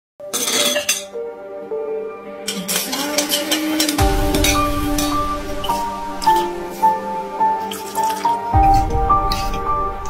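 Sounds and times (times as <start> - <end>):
background music with held tones: 0.2 - 10.0
ice clinking in glass: 0.3 - 1.2.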